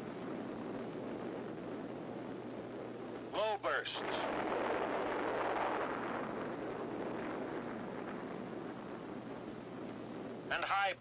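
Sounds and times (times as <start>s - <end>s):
bomb blast: 0.0s - 10.6s
soundtrack hiss: 0.0s - 11.0s.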